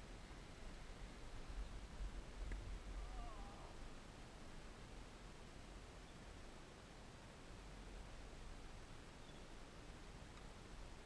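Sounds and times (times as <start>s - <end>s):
low steady rumble: 0.0s - 11.0s
wavering animal call: 3.0s - 3.8s.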